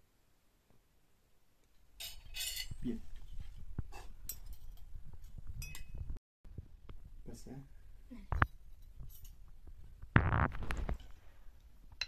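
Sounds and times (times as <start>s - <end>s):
cutlery clinking on dishes: 2.0s - 2.9s.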